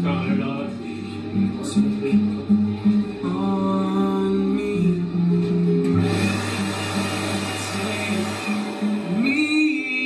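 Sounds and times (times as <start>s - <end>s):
acoustic guitar strumming: 0.0s - 10.0s
loud rushing noise with hum: 6.0s - 9.4s.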